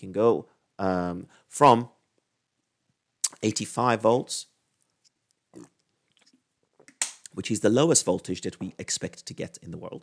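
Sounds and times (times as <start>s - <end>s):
mouth clicks: 3.2s - 3.5s.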